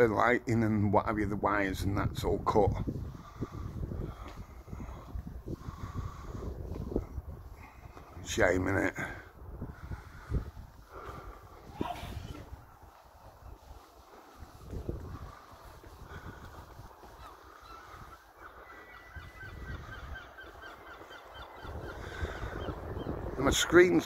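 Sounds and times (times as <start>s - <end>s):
birds calling rapidly: 15.2s - 24.0s.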